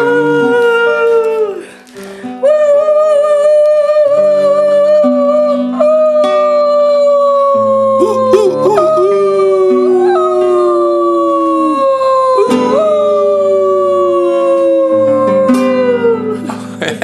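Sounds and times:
low sustained guitar notes: 0.0 - 1.8, 2.4 - 17.0
voices howling like wolves: 7.3 - 16.4.

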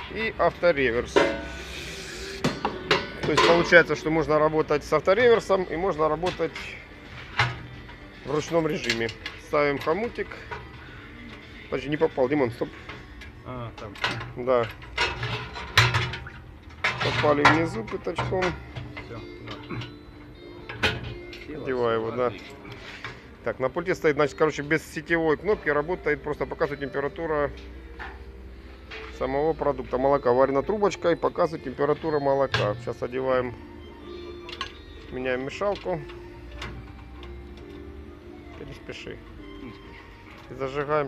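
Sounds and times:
faint background music: 0.0 - 41.0
indistinct voices: 1.0 - 4.7.

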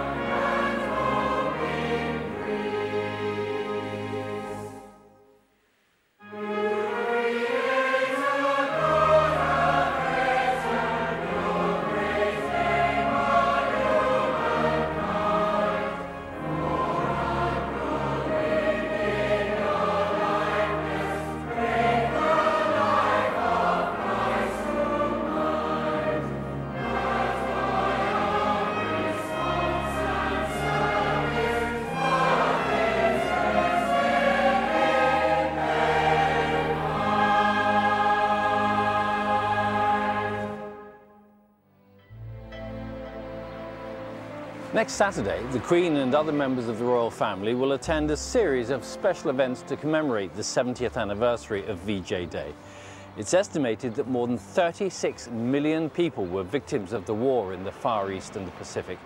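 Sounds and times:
choir and congregation singing hymn: 0.0 - 4.9, 6.3 - 41.0
instrumental accompaniment: 6.2 - 59.0.

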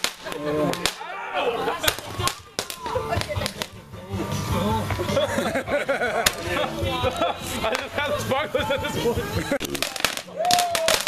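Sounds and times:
fireworks cracking: 0.0 - 11.0
people's voices outdoors: 0.0 - 11.0.

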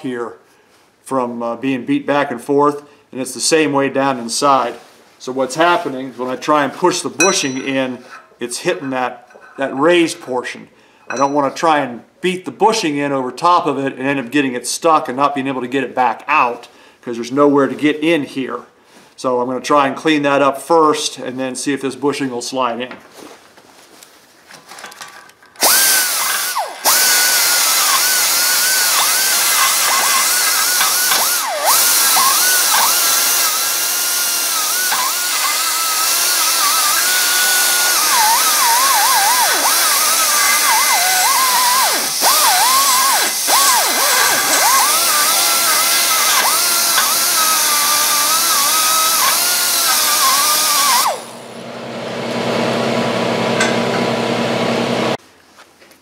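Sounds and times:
air die grinder cutting steel: 25.6 - 51.6, 52.2 - 55.2.

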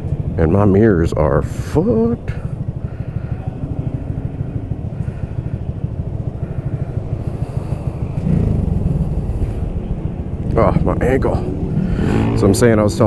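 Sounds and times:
motorcycle engine low rumble: 0.0 - 13.0.

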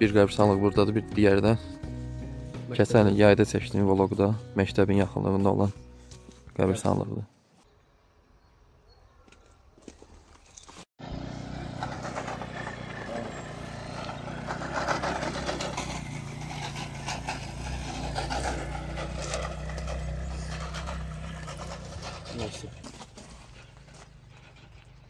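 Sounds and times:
road noise: 9.8 - 25.0
vehicle engine running: 11.0 - 25.0.

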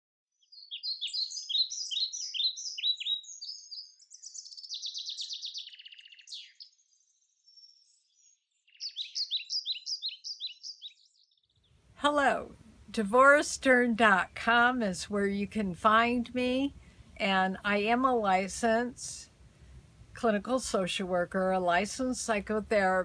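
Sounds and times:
songbird chirping and trilling: 0.3 - 12.0.

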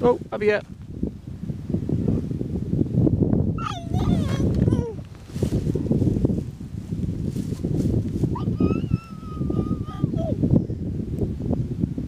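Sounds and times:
wind rumble on microphone: 0.0 - 12.0
toddler calling out: 3.6 - 5.0, 8.3 - 10.4.

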